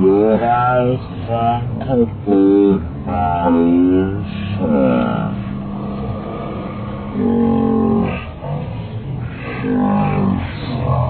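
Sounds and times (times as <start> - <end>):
murmur of crowd: 0.0 - 11.0.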